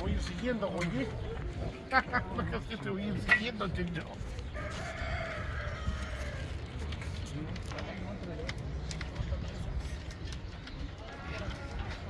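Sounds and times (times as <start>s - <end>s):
rooster crowing: 4.6s - 6.6s.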